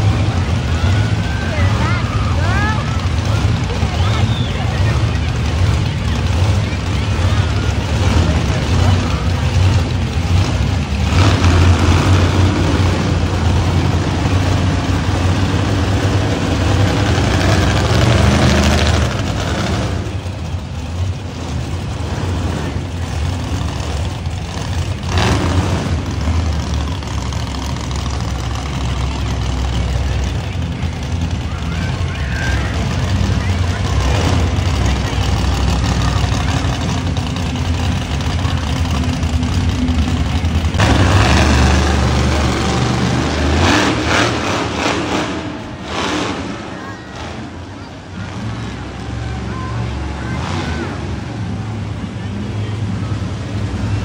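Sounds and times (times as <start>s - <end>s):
monster truck engines revving: 0.0s - 54.0s.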